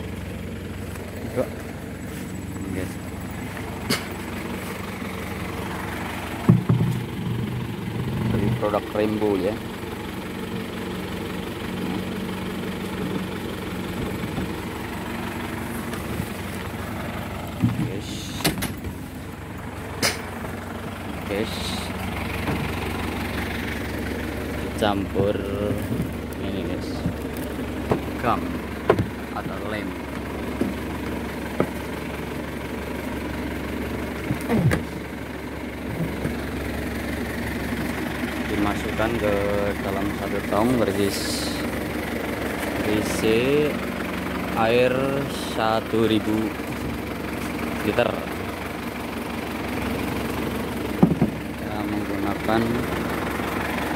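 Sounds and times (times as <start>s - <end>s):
engine idling: 0.0s - 53.9s
sharp knocks: 6.4s - 7.6s, 51.0s - 51.4s.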